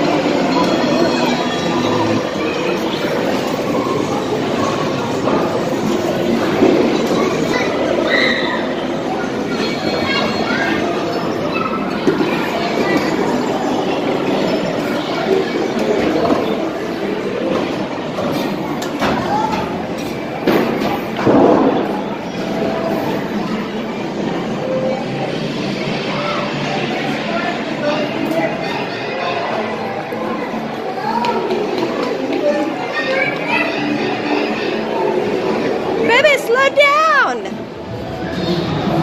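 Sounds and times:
overlapping voices of children and adults: 0:00.0 - 0:39.0.

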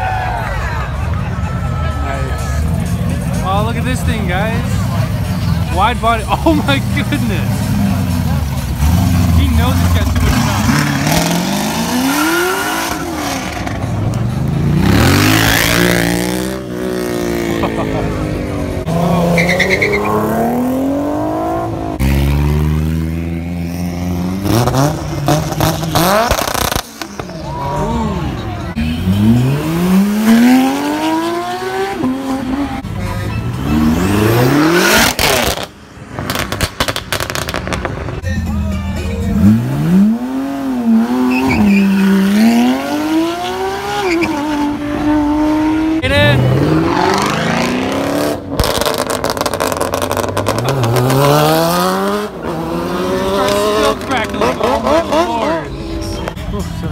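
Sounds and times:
car engines revving and accelerating: 0:00.0 - 0:56.9.

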